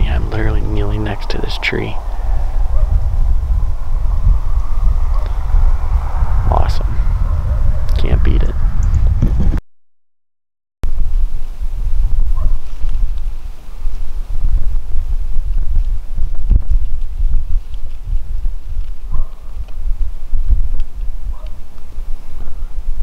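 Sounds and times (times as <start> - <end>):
wind buffeting microphone: 0.0 - 9.6, 10.9 - 23.0.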